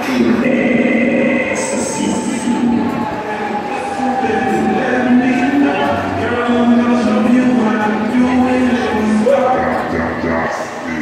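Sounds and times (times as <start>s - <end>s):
ride machinery whine: 0.0s - 11.0s.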